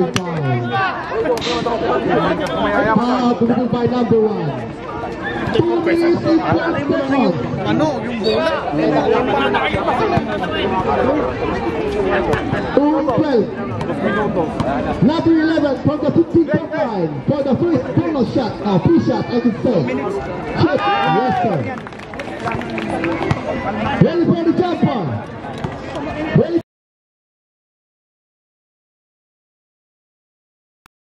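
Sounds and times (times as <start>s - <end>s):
men talking: 0.0s - 4.8s, 5.5s - 22.7s, 23.7s - 25.3s.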